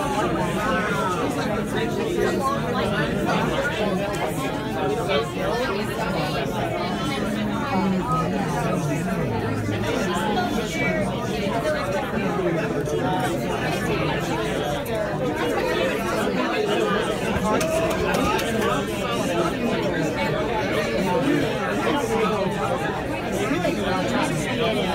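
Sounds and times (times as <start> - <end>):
background chatter: 0.0 - 24.9.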